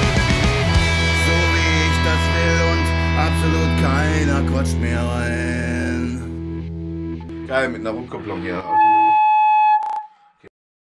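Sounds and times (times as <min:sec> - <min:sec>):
megaphone feedback howl: 0:08.2 - 0:10.3.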